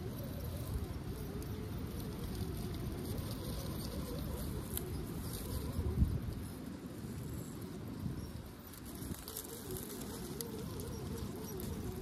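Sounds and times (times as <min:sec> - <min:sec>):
tires crunching on dirt and rocks: 0:00.0 - 0:12.0.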